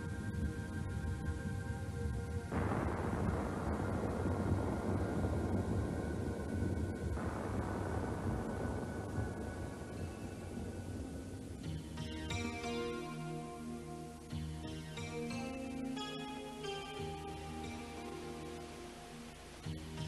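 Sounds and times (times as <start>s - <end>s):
soft background music: 0.0s - 20.0s.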